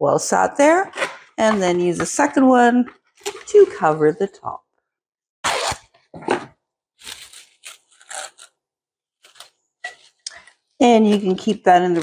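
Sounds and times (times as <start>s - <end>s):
plastic wrap crinkling: 7.0s - 8.5s, 9.2s - 10.5s
plastic wrap ripping: 7.0s - 8.5s, 9.2s - 9.6s.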